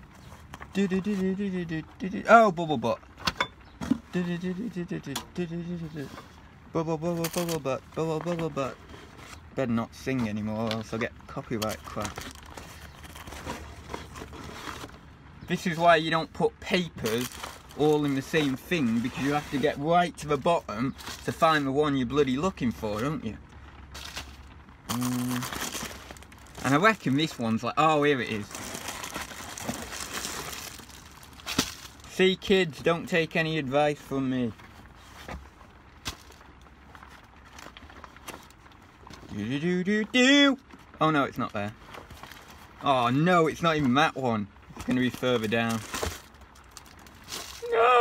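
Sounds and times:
paper and plastic rustling: 0.0 - 47.7.

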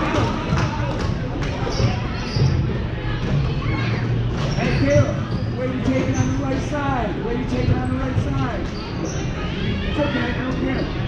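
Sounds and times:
voices of players and spectators: 0.0 - 11.0.

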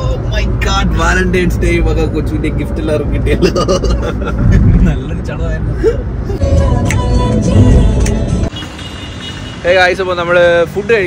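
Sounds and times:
car road and engine rumble: 0.0 - 11.0
music: 6.4 - 8.6.

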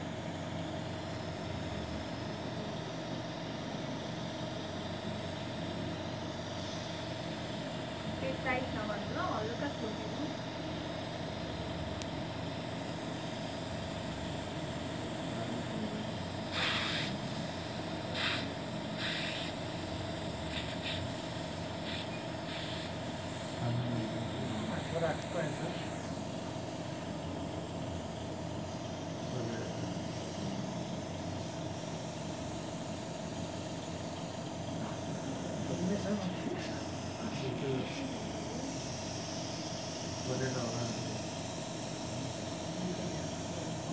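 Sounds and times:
steady machine hum: 0.0 - 43.9
short hisses: 16.5 - 17.2.

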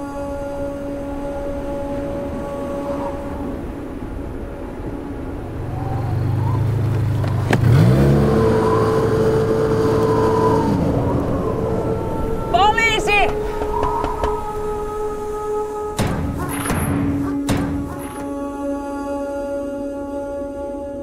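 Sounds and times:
musical drone: 0.0 - 21.0
snowmobile engine revving: 5.6 - 14.6
sharp hit: 16.0 - 18.3.

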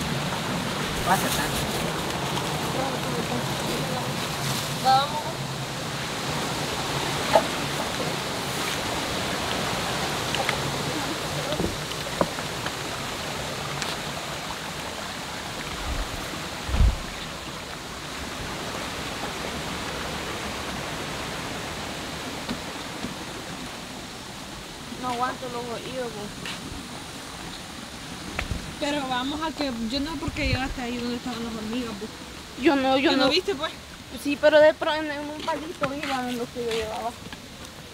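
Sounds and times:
river rushing: 0.0 - 37.9
low thump: 16.7 - 17.2.

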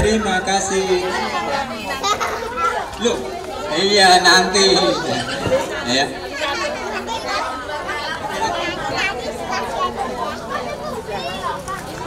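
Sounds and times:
adults and children chattering: 0.0 - 12.0.

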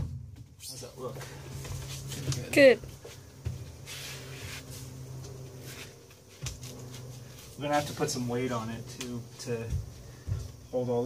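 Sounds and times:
thumps on plywood floor: 9.6 - 10.6.

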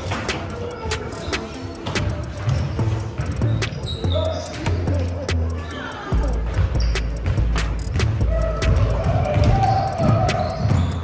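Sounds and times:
music with heavy bass: 0.0 - 11.0
basketball bouncing on wooden floor: 6.4 - 11.0.

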